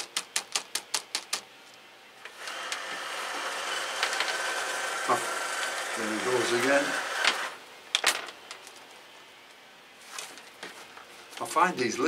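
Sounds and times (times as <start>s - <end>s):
potting mix rustling: 10.0s - 11.9s.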